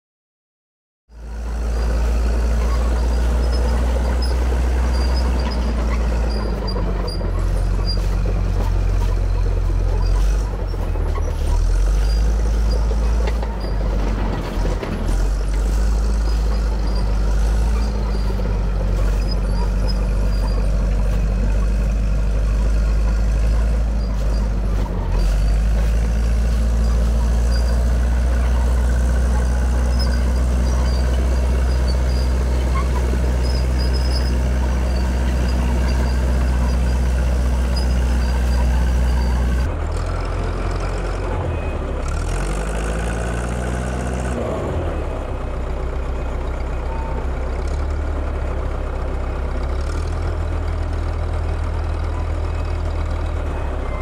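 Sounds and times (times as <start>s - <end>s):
bulldozer diesel engine running: 1.1s - 54.0s.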